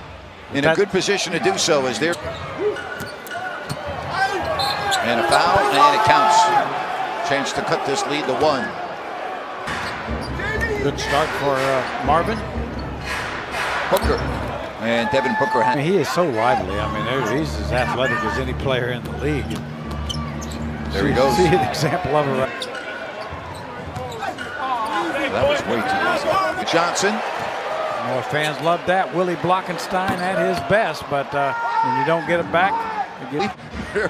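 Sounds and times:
arena crowd noise: 0.0 - 34.0.

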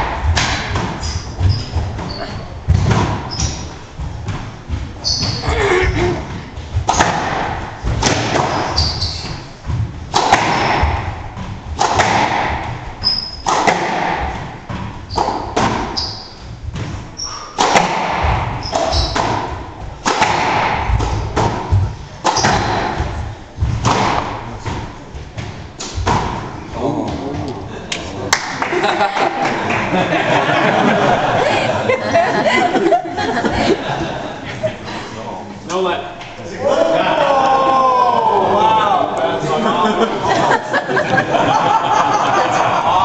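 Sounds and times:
racquet hitting squash ball: 0.0 - 27.2
ball hitting court walls: 0.0 - 27.6
shoes squeaking on wooden floor: 0.2 - 7.0, 7.6 - 11.8, 12.6 - 13.6, 14.2 - 17.4, 18.2 - 20.0, 20.9 - 23.9.

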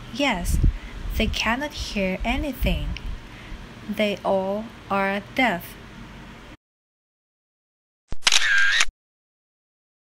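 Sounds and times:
sharp click: 8.1 - 8.9.

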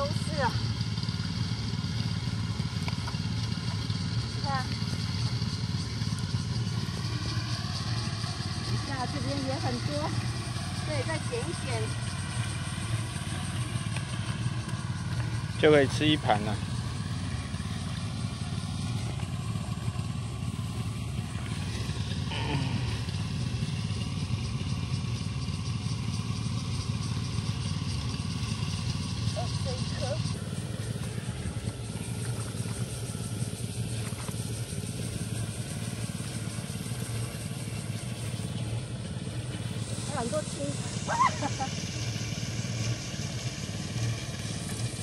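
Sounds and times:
distant small engine droning: 0.0 - 45.0.

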